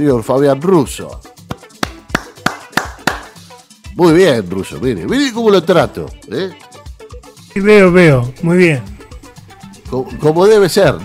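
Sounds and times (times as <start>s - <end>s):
faint background music: 0.0s - 11.0s
hand claps: 1.4s - 3.6s.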